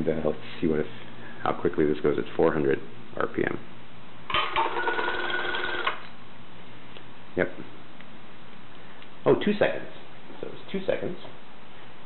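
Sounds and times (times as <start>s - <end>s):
pump motor whine: 4.3s - 6.1s.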